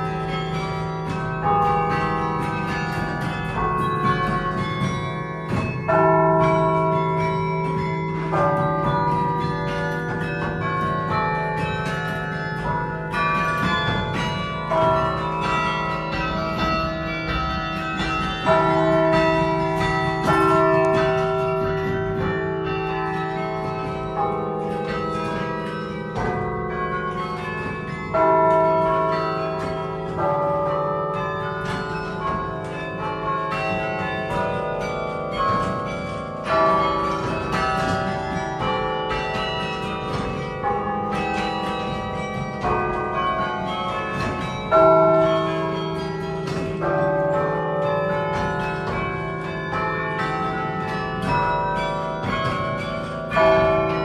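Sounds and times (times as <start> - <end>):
carillon bells playing a tune: 0.0 - 54.0.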